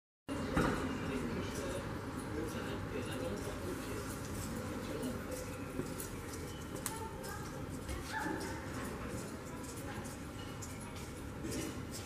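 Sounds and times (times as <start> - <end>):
faint voices: 0.3 - 12.0.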